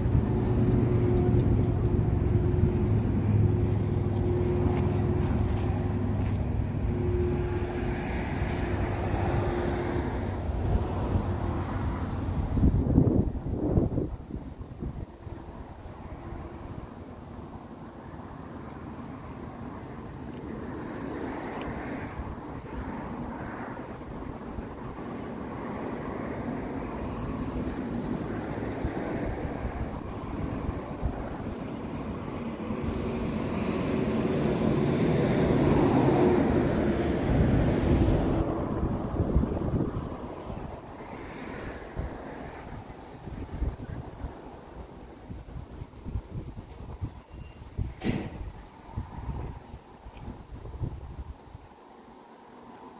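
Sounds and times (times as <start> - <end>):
wind on microphone: 0.0 - 17.0, 19.7 - 51.7
vehicle traffic rumble: 0.0 - 52.9.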